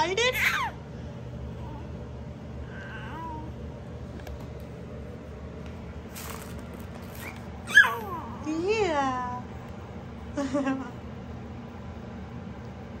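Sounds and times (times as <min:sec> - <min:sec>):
baby cooing: 0:02.7 - 0:03.5, 0:07.7 - 0:08.4
baby squealing: 0:07.2 - 0:08.3.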